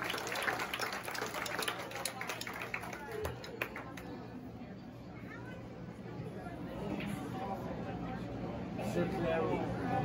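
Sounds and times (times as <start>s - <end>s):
scattered clapping: 0.0s - 4.1s
murmur of audience voices: 0.0s - 10.0s.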